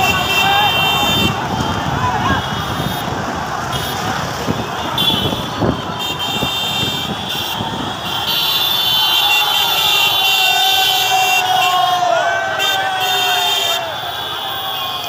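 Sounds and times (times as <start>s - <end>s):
motorcycle engines: 0.0s - 15.0s
passing traffic: 0.0s - 15.0s
shrill steady horn tone: 4.8s - 15.0s.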